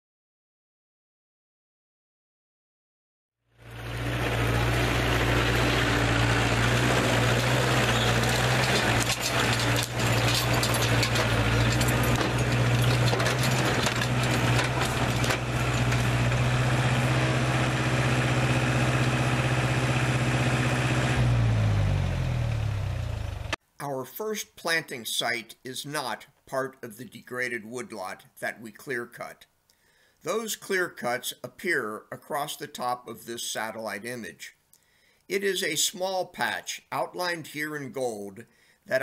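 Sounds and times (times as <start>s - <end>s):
tractor engine running: 3.6s - 23.6s
trailer knocks and rattles: 3.8s - 17.4s.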